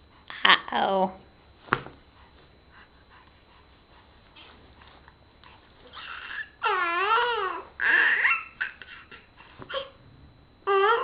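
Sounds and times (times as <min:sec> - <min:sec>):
baby high-pitched squeal: 0:05.9 - 0:09.9, 0:10.7 - 0:11.0.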